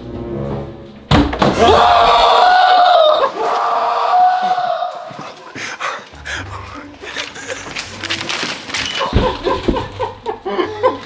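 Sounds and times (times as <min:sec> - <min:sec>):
breathy laughs: 0:06.5 - 0:08.1, 0:09.0 - 0:11.0.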